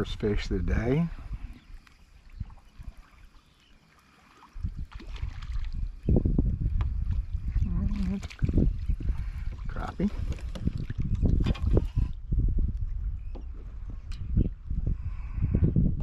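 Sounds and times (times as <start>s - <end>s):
low wind rumble: 0.0s - 3.2s, 4.5s - 16.0s.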